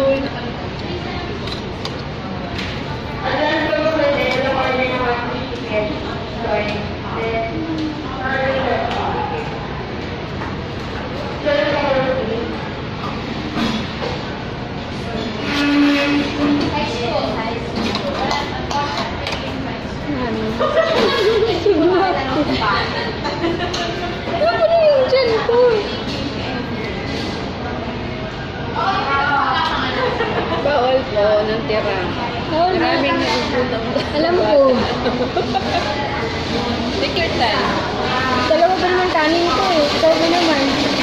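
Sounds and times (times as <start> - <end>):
murmur of voices: 0.0 - 41.0.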